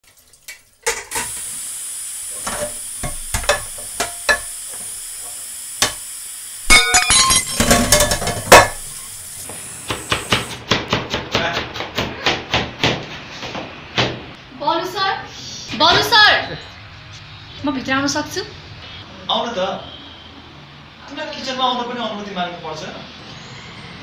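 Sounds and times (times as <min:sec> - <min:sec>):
steady hiss: 0:01.1 - 0:10.6
kitchenware clinks: 0:06.7 - 0:08.9.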